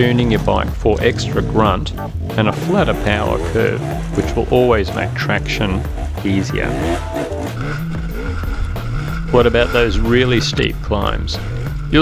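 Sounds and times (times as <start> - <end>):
background music with steady beat: 0.0 - 12.0
dirt bike engine under load: 0.0 - 12.0.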